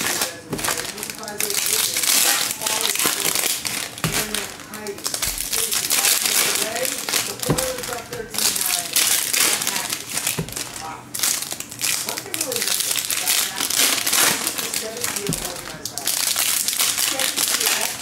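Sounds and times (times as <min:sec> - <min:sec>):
foil wrappers crinkling: 0:00.0 - 0:18.0.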